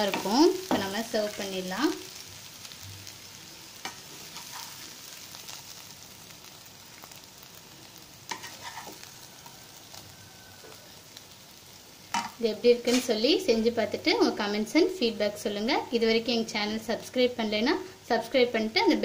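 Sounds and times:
food sizzling in a pan: 0:00.0 - 0:19.0.

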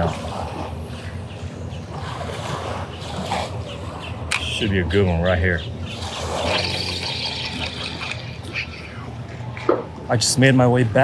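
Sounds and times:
water lapping against concrete wall: 0:00.0 - 0:05.1, 0:05.8 - 0:08.8.

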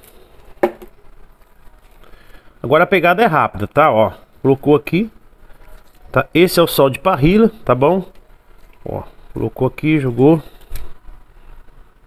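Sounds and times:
plastic bottle set down knock: 0:00.6 - 0:00.9.

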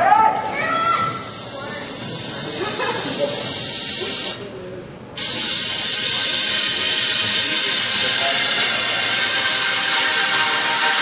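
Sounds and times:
hissing white noise in dance track: 0:00.0 - 0:11.0.

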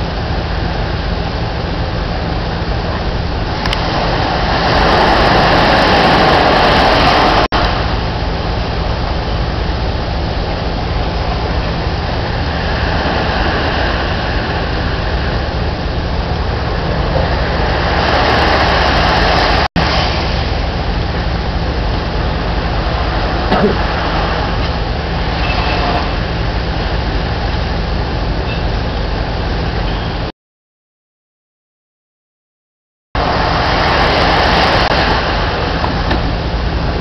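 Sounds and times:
surf washing onto beach: 0:00.0 - 0:28.4, 0:33.2 - 0:37.0.

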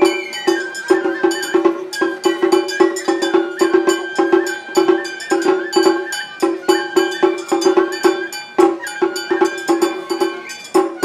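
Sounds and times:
high bamboo flute melody: 0:00.0 - 0:11.0
metallic percussion strikes: 0:00.0 - 0:11.0.

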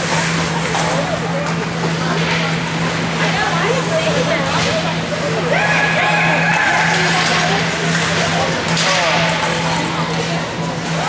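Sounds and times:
steady arena hum: 0:00.0 - 0:11.0.

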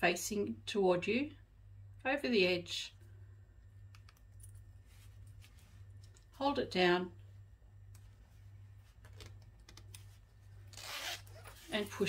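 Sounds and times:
low steady hum: 0:00.0 - 0:12.0
zipper slider clicks: 0:10.7 - 0:11.6.

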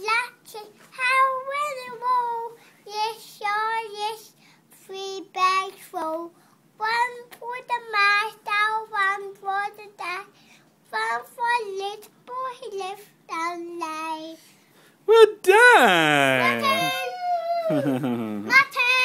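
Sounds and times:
toddler singing: 0:16.2 - 0:19.0.

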